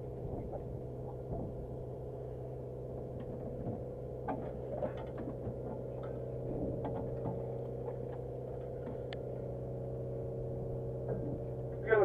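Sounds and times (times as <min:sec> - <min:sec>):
boat engine humming: 0:00.0 - 0:12.0.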